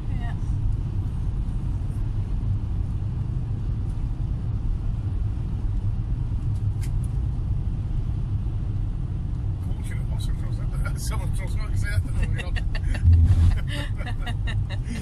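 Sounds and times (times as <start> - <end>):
vehicle engine and tyre rumble: 0.0 - 15.0.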